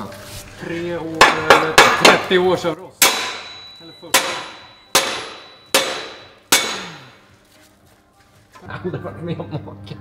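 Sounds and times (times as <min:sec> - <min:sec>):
hammer clanging on metal pipe: 0:01.2 - 0:02.4, 0:03.0 - 0:07.2.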